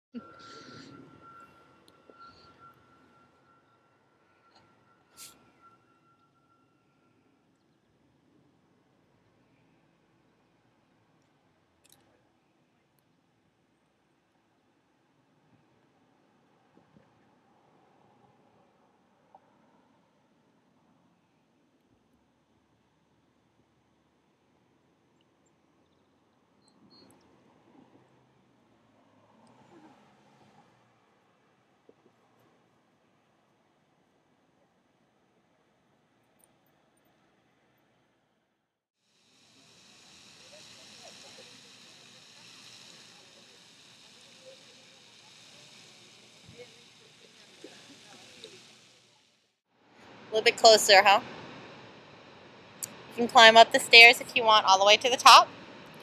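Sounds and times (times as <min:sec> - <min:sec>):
faint high squeaks: 0:00.2 - 0:07.4
distant indistinct voices: 0:00.2 - 0:07.5, 0:39.4 - 0:49.3
faint outdoor hiss: 0:00.2 - 0:56.0
steady hiss: 0:39.1 - 0:49.4.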